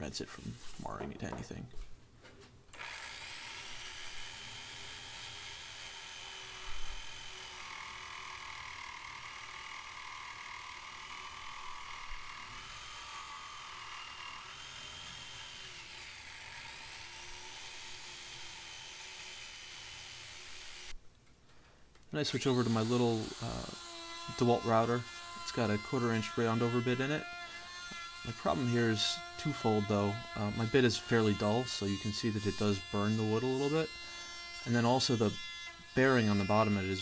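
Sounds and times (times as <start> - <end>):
electric jigsaw cutting wood: 2.8 - 21.0, 22.3 - 37.0.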